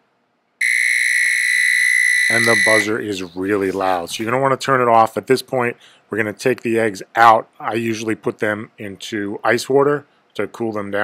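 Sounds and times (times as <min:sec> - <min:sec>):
high-pitched buzzer tone: 0:00.6 - 0:03.0.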